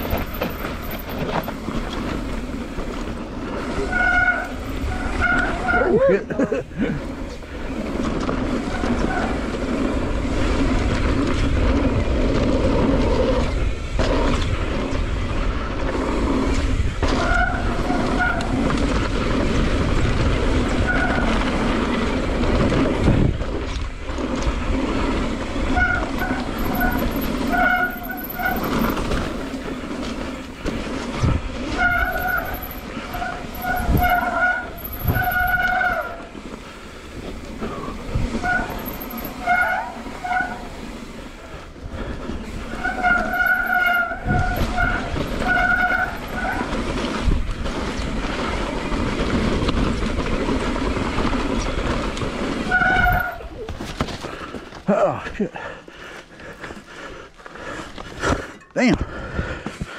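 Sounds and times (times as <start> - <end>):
disc brakes squealing: 0.0 - 6.3, 7.1 - 9.8, 17.0 - 19.1, 20.6 - 22.1, 25.1 - 47.2, 51.3 - 54.2
bike tyres rolling on dirt: 0.0 - 59.9.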